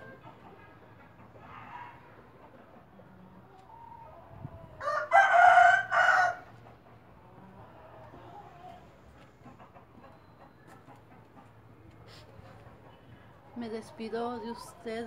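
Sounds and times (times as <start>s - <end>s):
rooster crowing: 4.8s - 6.5s.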